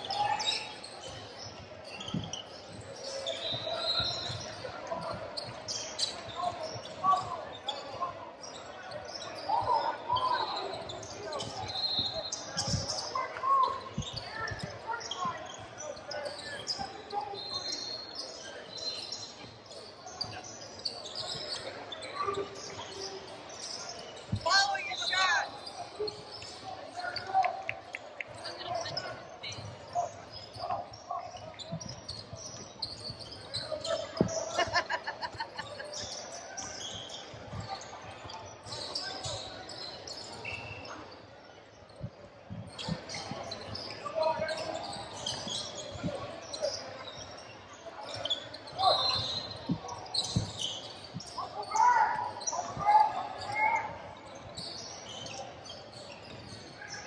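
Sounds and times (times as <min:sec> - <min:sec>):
sneakers squeaking on floor: 0:00.0 - 0:57.0.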